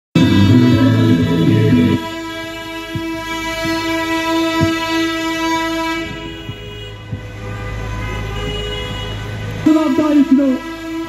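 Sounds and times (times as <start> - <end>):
long vehicle horn blast: 0.2 - 11.0
other vehicle horns: 0.2 - 11.0.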